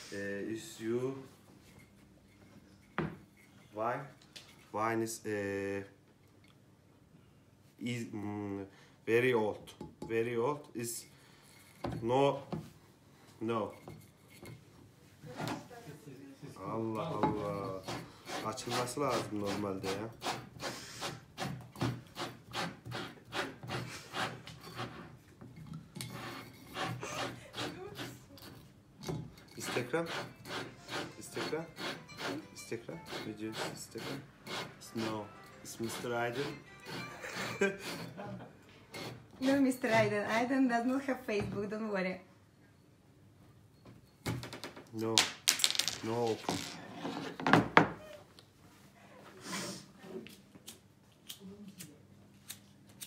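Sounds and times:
cork squeaking against glass: 29.5 - 35.2.

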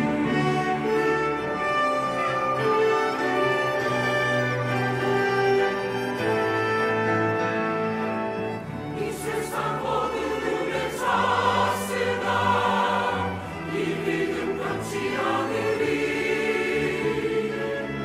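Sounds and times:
choir singing a hymn: 0.0 - 6.3, 6.9 - 18.0
chamber orchestra: 0.0 - 18.0
piano: 0.0 - 18.0.

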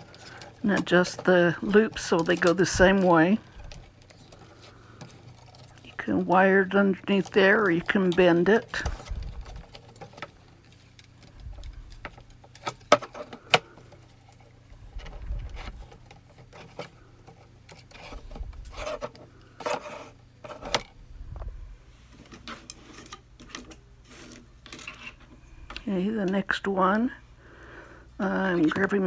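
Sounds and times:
wire clicking and scraping: 0.0 - 21.5, 22.1 - 26.4.

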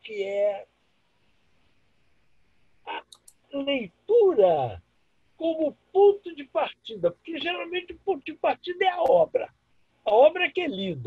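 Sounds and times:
faint room hiss: 0.0 - 11.0
man speaking syllable: 2.9 - 4.8, 5.4 - 9.5, 10.1 - 11.0.

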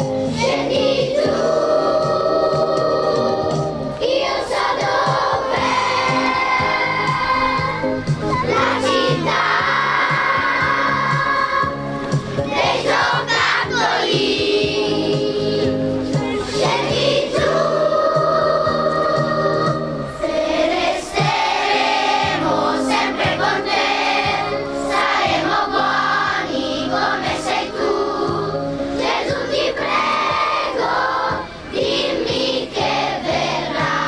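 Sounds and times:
choir singing sustained notes: 0.2 - 34.0.

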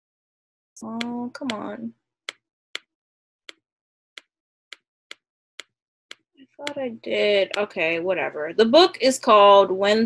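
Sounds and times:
sharp computer clicks: 0.8 - 2.9, 4.7 - 8.0.

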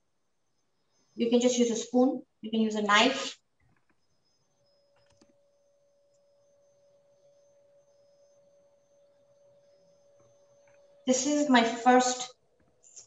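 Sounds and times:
faint steady tone: 0.0 - 13.0.

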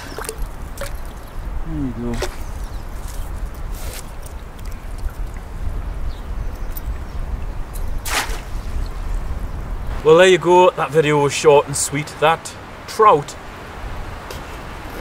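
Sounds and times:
water dripping and splashing: 0.0 - 8.6.

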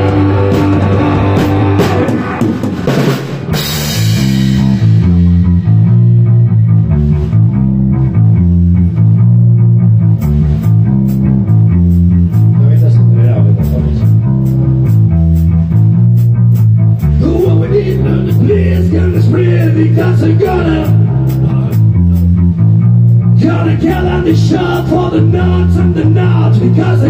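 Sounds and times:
repeating bass and guitar riff: 0.0 - 27.0
rock band playing live: 0.0 - 27.0.

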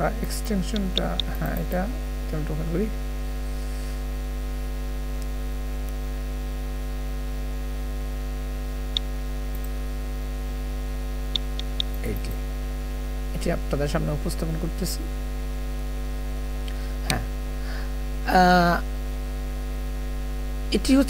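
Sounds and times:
electrical mains hum: 0.0 - 21.0
mouse clicks: 0.7 - 1.7, 11.4 - 12.0.

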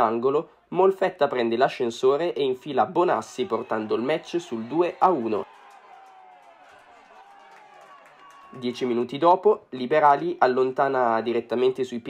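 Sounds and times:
distant players shouting: 3.2 - 8.8.

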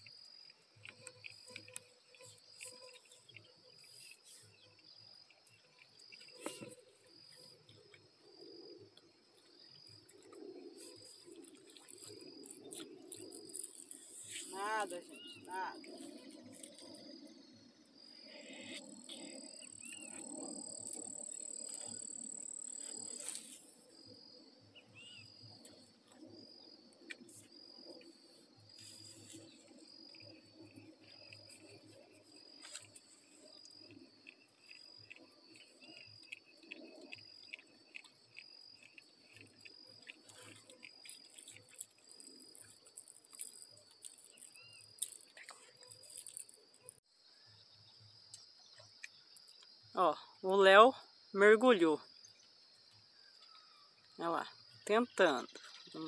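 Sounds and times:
high steady insect buzz: 0.0 - 56.0
insect chirping: 0.0 - 56.0.

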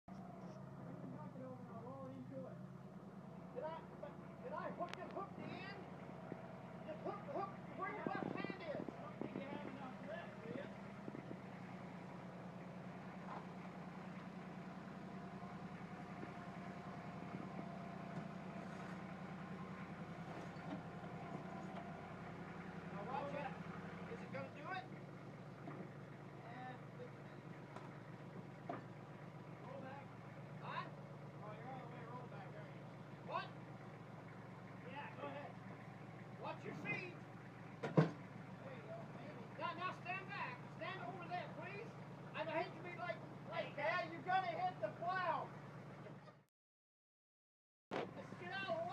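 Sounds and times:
tractor engine idling: 0.1 - 46.4, 47.9 - 48.9.

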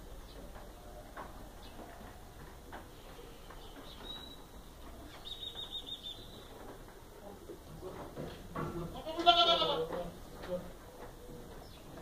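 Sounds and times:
goat bleating: 8.9 - 10.2.

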